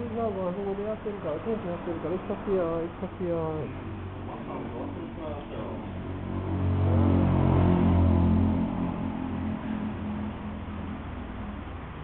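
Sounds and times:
motorcycle engine revving: 3.7 - 11.8.

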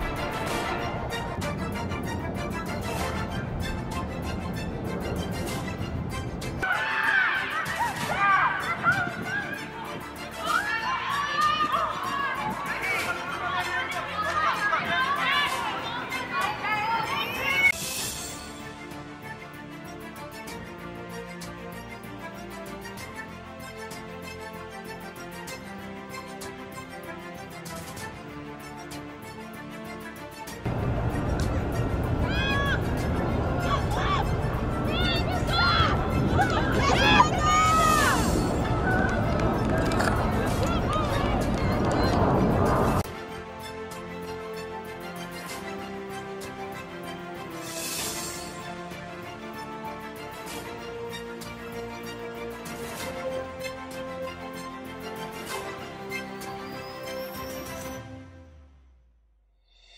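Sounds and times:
music: 0.0 - 59.9
steady background noise: 30.7 - 43.0
voices calling and chattering: 30.7 - 43.0.

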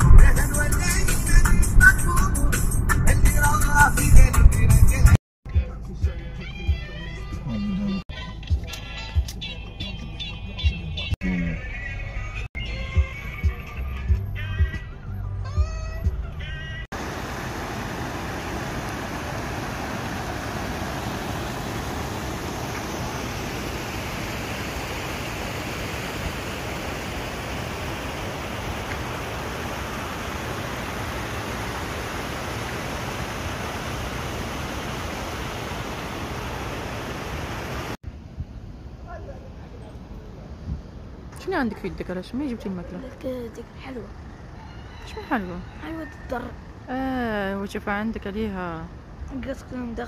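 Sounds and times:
music with a beat: 0.0 - 7.5, 8.1 - 11.1, 12.6 - 15.0
water spilling over stone cascades: 17.0 - 38.0.

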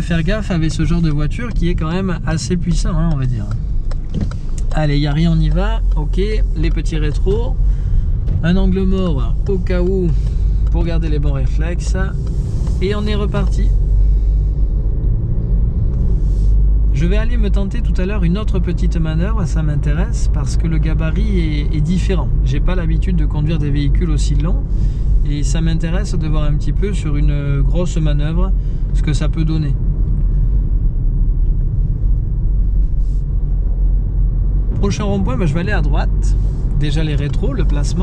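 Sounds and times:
car cabin road rumble: 0.0 - 38.0.

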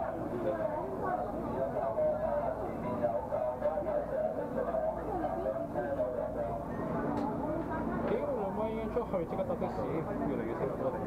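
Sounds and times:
passengers chattering: 0.0 - 11.0.

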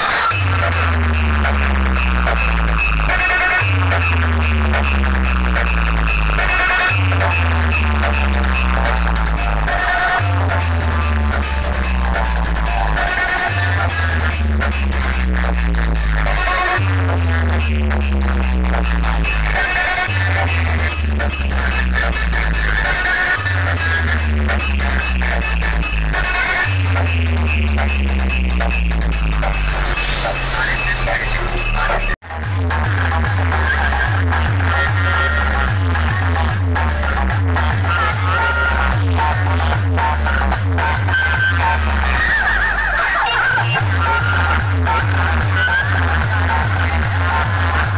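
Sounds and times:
deep bass notes: 0.0 - 42.9, 43.8 - 47.9
loud electronic dance music: 0.0 - 47.9
high warbling tone: 7.4 - 16.0.

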